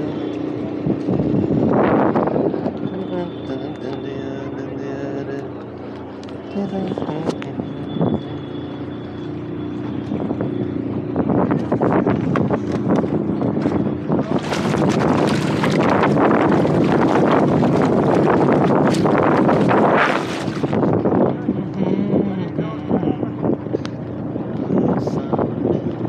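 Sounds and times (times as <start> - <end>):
water rushing and splashing: 9.8 - 21.2.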